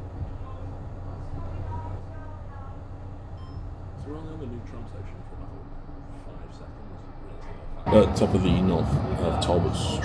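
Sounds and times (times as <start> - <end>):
distant murmur of voices: 0.0 - 10.0
low background rumble: 0.0 - 10.0
man speaking: 7.9 - 10.0.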